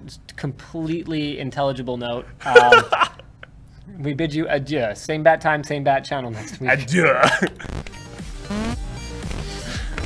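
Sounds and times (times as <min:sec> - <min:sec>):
man laughing: 0:02.4 - 0:03.5, 0:06.4 - 0:07.8
background music: 0:06.4 - 0:10.0.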